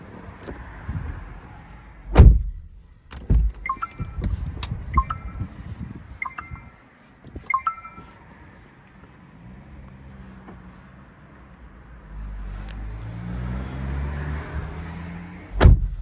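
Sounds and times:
heavy thump: 2.1s - 3.6s, 15.6s - 16.0s
car dashboard chime: 3.6s - 4.2s, 5.0s - 5.4s, 6.2s - 6.7s, 7.5s - 8.1s.

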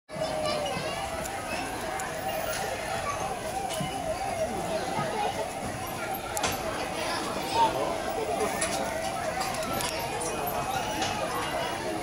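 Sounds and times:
background chatter of people: 0.1s - 12.0s
children's voices: 0.1s - 12.0s.

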